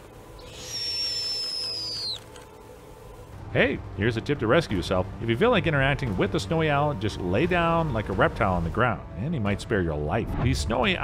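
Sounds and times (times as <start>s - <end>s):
owl whistling call: 0.3s - 2.3s.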